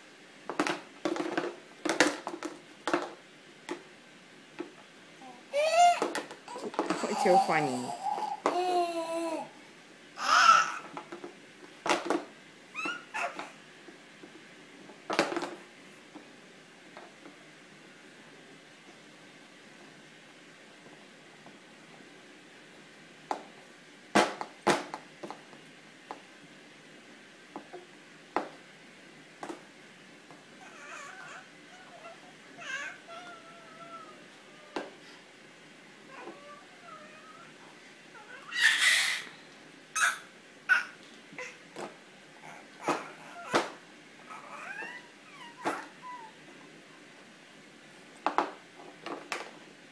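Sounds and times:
baby whining: 0:05.2 - 0:09.6, 0:10.2 - 0:11.0, 0:12.7 - 0:13.6, 0:30.6 - 0:35.2, 0:36.1 - 0:39.4, 0:40.0 - 0:41.7, 0:42.4 - 0:46.4
baby squealing: 0:05.5 - 0:09.4, 0:10.2 - 0:10.9, 0:12.8 - 0:13.6, 0:30.6 - 0:34.2, 0:38.2 - 0:39.3, 0:40.0 - 0:41.6.

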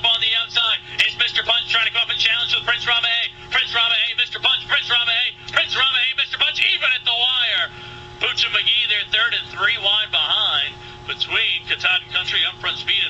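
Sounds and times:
man announcing race fast: 0:00.0 - 0:13.0
steady hum: 0:00.0 - 0:13.0.

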